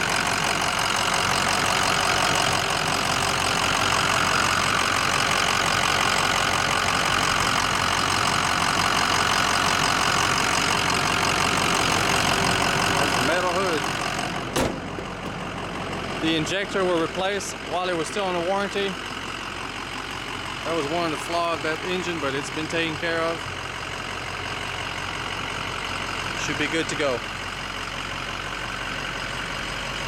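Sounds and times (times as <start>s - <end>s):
diesel engine idling: 0.0s - 30.0s.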